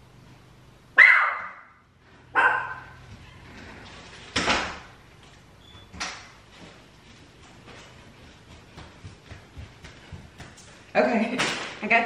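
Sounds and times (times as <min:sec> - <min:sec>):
large dog barking: 0:02.4 - 0:03.0.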